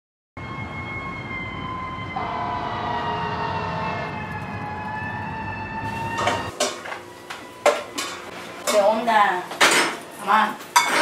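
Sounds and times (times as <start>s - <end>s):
sirens wailing: 0.4s - 8.6s
low city traffic rumble: 0.4s - 10.8s.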